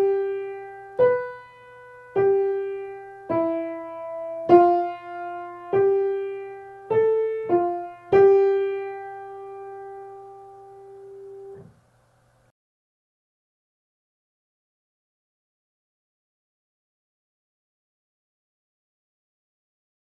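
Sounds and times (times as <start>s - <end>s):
slow piano melody: 0.0s - 11.7s.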